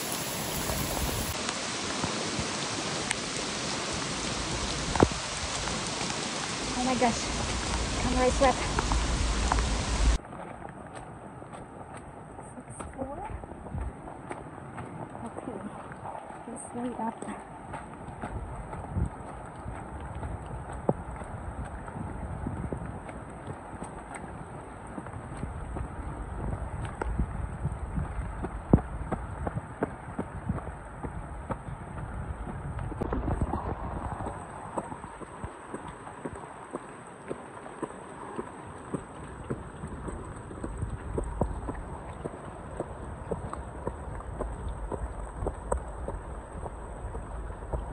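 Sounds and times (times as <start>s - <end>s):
running footsteps on wet dirt: 0.0s - 47.9s.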